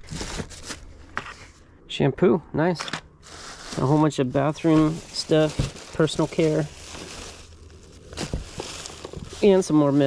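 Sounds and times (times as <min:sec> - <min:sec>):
plastic packaging crinkling: 0:00.0 - 0:00.9, 0:03.2 - 0:10.0
fabric bag rustling: 0:03.2 - 0:10.0.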